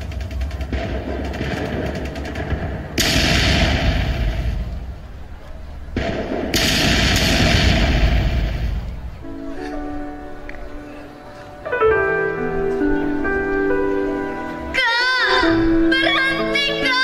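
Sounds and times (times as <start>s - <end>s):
rapid gunfire: 0.0s - 4.9s, 6.0s - 8.8s
loud blasts: 0.0s - 9.3s.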